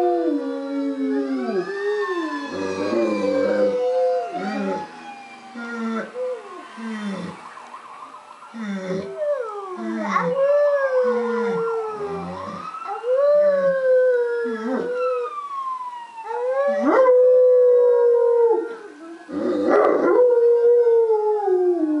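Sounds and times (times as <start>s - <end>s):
fire truck siren on tv: 0.0s - 22.0s
dog howling: 8.6s - 15.0s.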